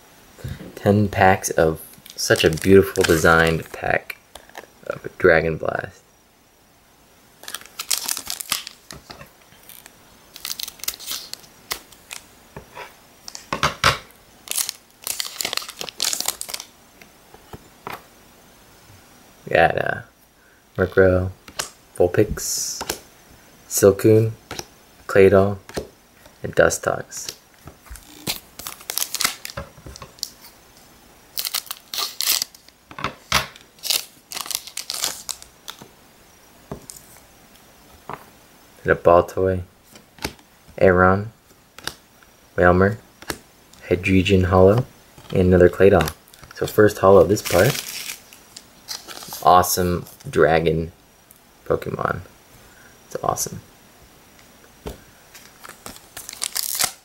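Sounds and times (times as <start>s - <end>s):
foil wrapper crinkling and tearing: 2.1s - 3.8s, 7.4s - 12.3s, 14.4s - 16.7s, 27.8s - 30.5s, 31.3s - 32.8s, 33.5s - 35.9s, 45.2s - 50.3s, 55.3s - 57.0s.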